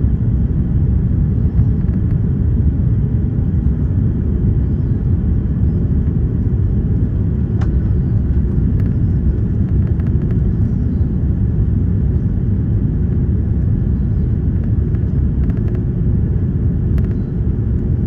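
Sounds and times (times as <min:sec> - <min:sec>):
jet engines rumbling in cabin: 0:00.0 - 0:18.0.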